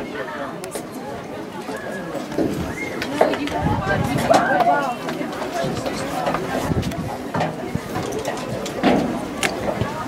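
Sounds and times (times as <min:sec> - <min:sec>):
open-air ambience: 0:00.0 - 0:10.0
spectators talking: 0:00.0 - 0:10.0.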